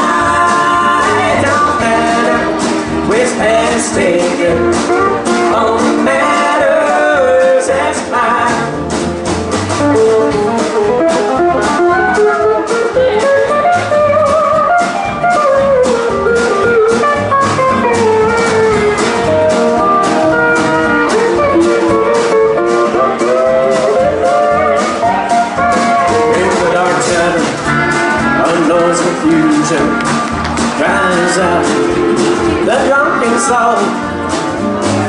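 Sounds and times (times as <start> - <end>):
drum kit beat: 0.0 - 35.0
strummed acoustic guitar: 0.0 - 35.0
pedal steel guitar soloing: 9.8 - 28.6.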